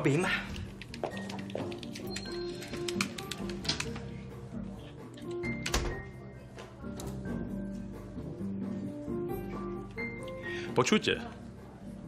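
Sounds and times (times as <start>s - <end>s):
background music with low notes: 0.0s - 12.0s
computer keyboard typing: 0.8s - 4.0s.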